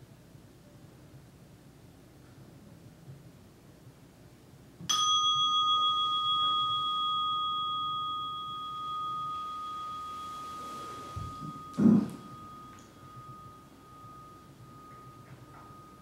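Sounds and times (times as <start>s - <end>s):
meditation bell ringing: 4.9s - 16.0s
cloth rustling: 9.4s - 13.5s
low thump: 11.2s - 12.4s.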